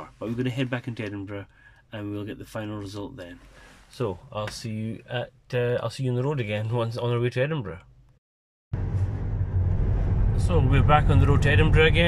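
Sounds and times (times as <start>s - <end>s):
wind noise in car cabin: 8.8s - 12.0s.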